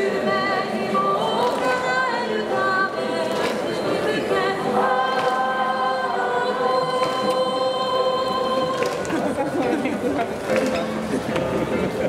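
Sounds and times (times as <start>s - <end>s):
choir singing: 0.0s - 9.5s.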